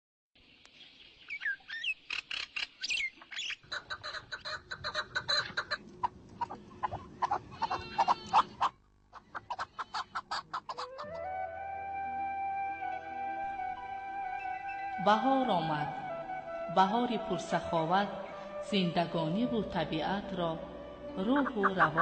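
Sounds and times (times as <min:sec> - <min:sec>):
birds chirping: 0:00.4 - 0:11.2, 0:12.8 - 0:15.2
soft sustained music: 0:10.9 - 0:22.0.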